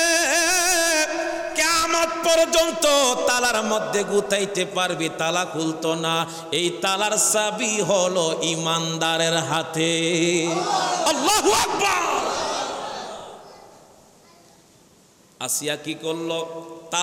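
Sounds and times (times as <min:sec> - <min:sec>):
man chanting over pa system: 0:00.0 - 0:10.5, 0:15.4 - 0:17.0.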